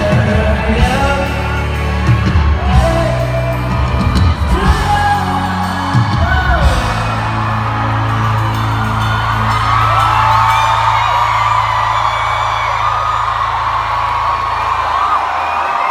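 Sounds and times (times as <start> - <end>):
crowd screaming and whooping: 0.0 - 15.9
rock band holding deep note: 0.0 - 15.9.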